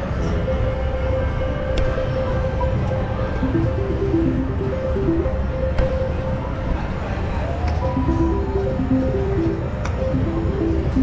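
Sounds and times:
slot machine tones: 3.4s - 5.7s, 7.8s - 11.0s.

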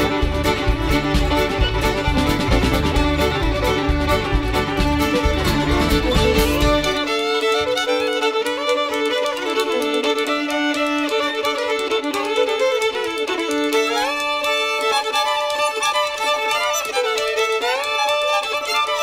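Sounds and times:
fiddle playing sliding notes: 0.0s - 19.0s
rhythm accompaniment: 0.0s - 19.0s.

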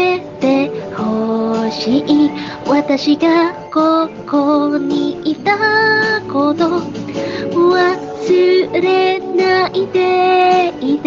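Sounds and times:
backing music: 0.0s - 11.0s
woman singing slow melody: 0.0s - 11.0s.

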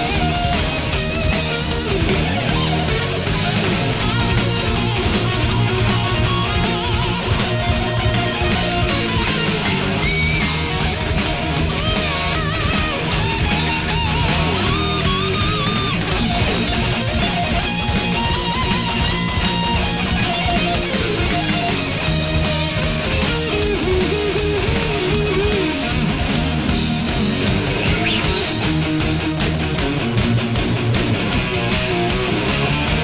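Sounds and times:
bass guitar: 0.0s - 33.0s
distorted electric guitar solo: 0.0s - 33.0s
drums: 0.0s - 33.0s.

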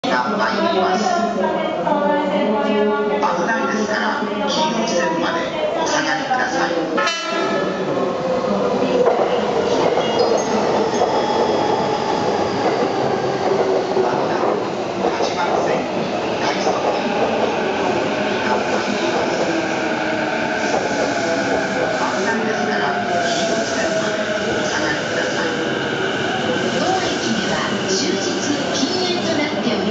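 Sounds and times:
train wheel and rail noise: 0.1s - 29.9s.

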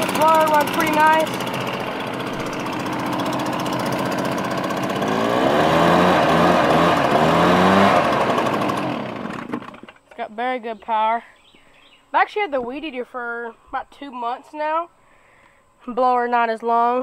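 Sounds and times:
leaf blower engine revving: 0.0s - 10.0s.

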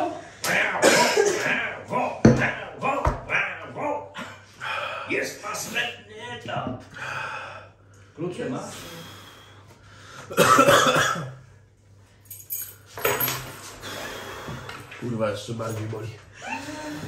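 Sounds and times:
man breathing hard: 6.9s - 8.0s, 13.6s - 15.0s.

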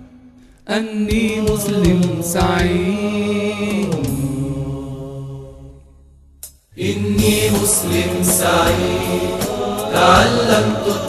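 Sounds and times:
sustained chanted vocal note: 6.8s - 11.0s.

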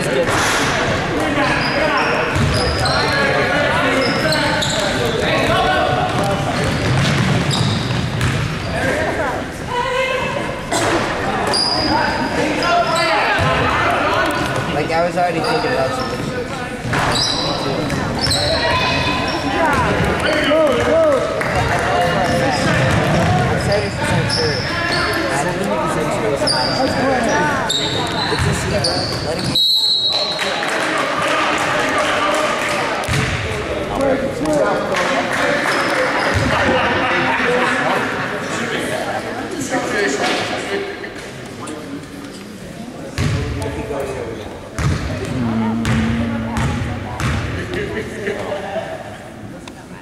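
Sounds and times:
spectators' voices: 0.0s - 50.0s
sneakers squeaking: 1.3s - 9.1s, 11.0s - 20.1s, 22.2s - 25.5s, 26.4s - 30.4s, 35.7s - 36.5s, 43.2s - 43.6s, 44.8s - 47.8s
basketball bouncing: 2.3s - 2.6s, 6.1s - 8.6s, 44.8s - 47.5s
basketball bouncing on hardwood floor: 45.8s - 47.4s.

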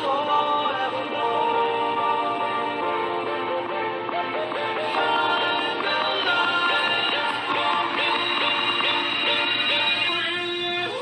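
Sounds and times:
song with vocals: 0.0s - 11.0s.

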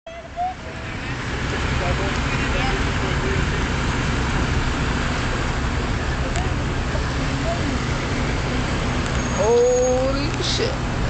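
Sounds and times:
road traffic rumble: 0.1s - 11.0s.

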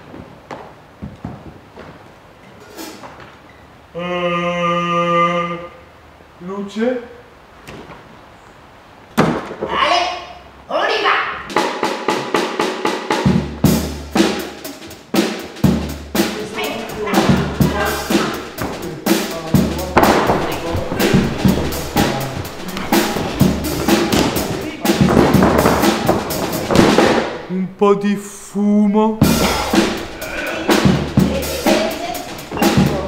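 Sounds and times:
snare and bass drum hits: 11.5s - 27.5s, 29.2s - 33.0s.

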